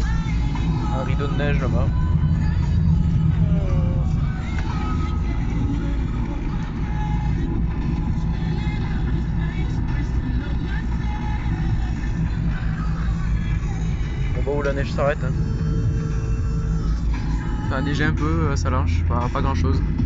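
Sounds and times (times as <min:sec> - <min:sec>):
car road and engine rumble: 0:00.0 - 0:20.0
music with voice: 0:00.0 - 0:20.0.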